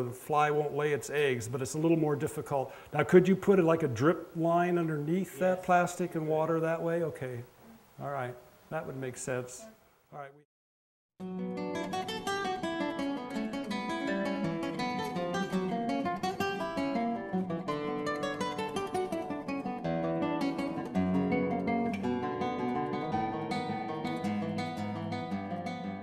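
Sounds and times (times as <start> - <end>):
acoustic guitar music: 0.0 - 7.8, 11.2 - 26.0.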